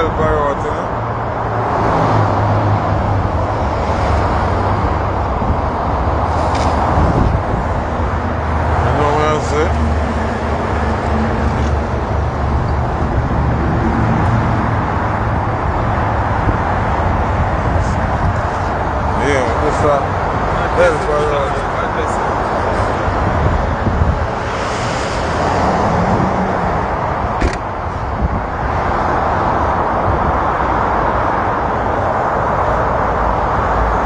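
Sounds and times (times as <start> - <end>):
traffic engine hum: 0.0 - 34.0
traffic rushing noise: 0.0 - 34.0.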